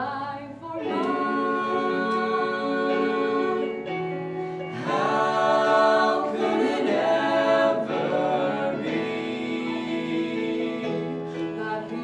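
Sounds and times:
vocal trio singing in harmony: 0.0s - 12.0s.

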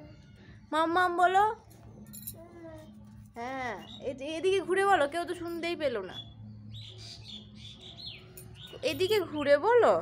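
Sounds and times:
small birds chirping: 2.6s - 4.3s, 6.0s - 9.3s.

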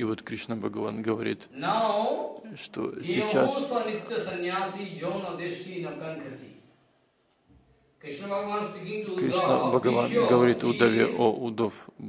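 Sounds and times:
man speaking: 0.0s - 6.7s, 8.0s - 12.0s.

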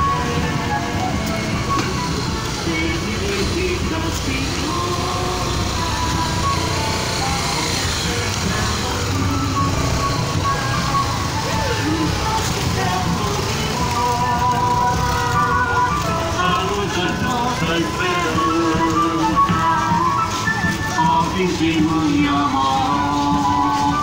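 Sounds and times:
music: 0.0s - 24.0s
vehicle engines rumbling: 0.0s - 24.0s
voices: 0.0s - 24.0s.

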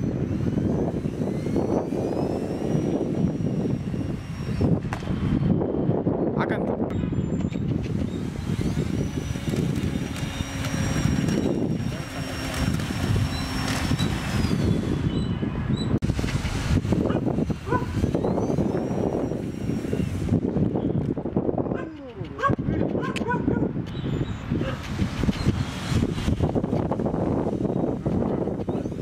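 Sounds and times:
electric motor propeller whine: 0.0s - 29.0s.

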